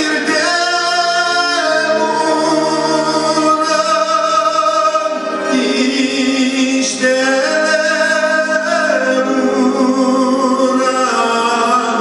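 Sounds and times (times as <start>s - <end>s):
accordion: 0.0s - 12.0s
man singing folk song: 0.0s - 12.0s.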